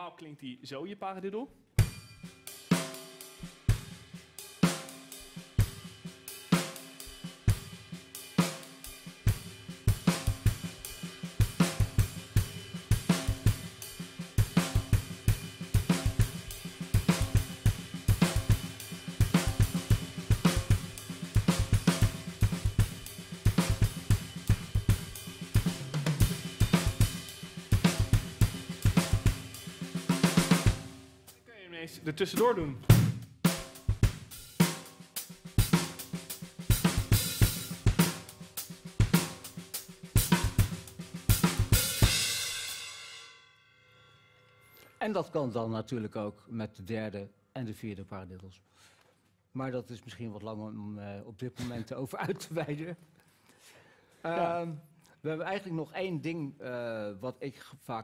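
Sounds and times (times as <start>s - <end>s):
drum kit paradiddle pattern: 1.8s - 31.4s, 32.2s - 43.0s.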